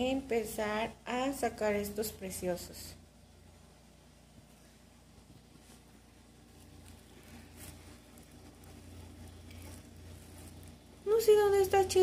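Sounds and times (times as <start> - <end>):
soft clicks and rustles: 4.2 - 11.0.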